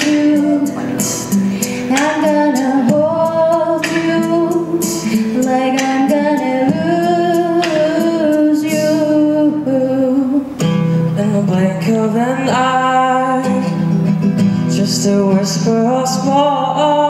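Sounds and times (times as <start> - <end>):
acoustic guitar: 0.0 - 17.0
woman singing a slow ballad: 0.0 - 17.0.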